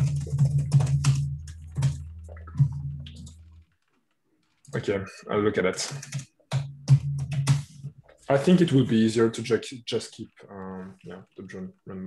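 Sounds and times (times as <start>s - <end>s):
computer keyboard typing: 0.0s - 3.7s, 5.8s - 7.9s.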